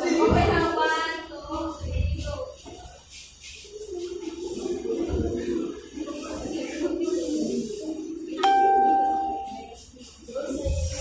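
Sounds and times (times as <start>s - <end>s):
room noise: 2.5s - 11.0s
bell-like chime: 8.4s - 9.8s.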